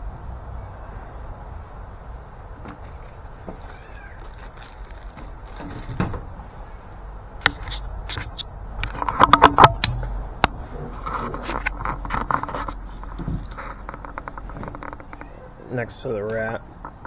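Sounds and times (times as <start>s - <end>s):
knife and packaging handling noise: 2.6s - 6.1s
steady low rumble: 4.5s - 15.1s.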